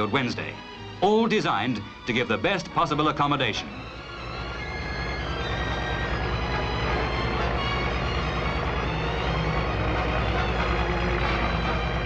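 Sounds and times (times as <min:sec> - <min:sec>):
construction machinery engine drone: 0:00.0 - 0:12.0
music playing: 0:00.0 - 0:12.0.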